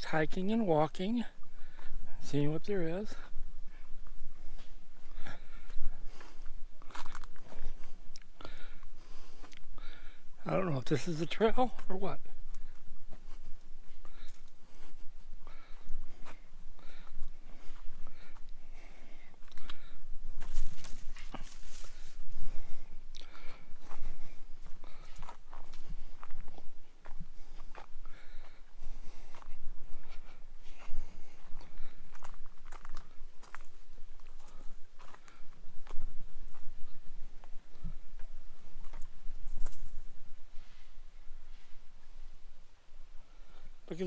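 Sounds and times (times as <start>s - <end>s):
footsteps crunching on dry fronds: 0.4s - 9.8s, 10.4s - 42.2s
dry brush rustling: 20.3s - 23.0s, 38.2s - 41.8s.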